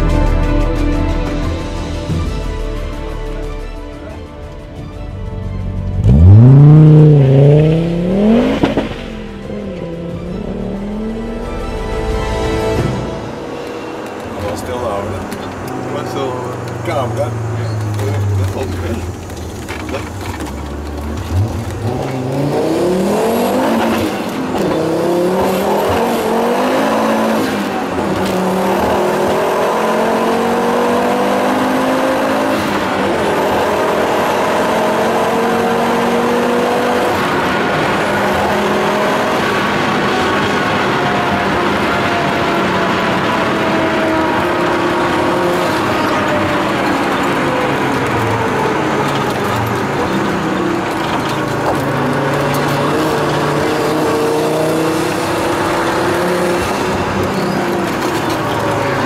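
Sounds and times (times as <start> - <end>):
road and tyre noise: 0.0 - 59.0
car engine pulling hard: 5.6 - 12.0, 12.6 - 59.0.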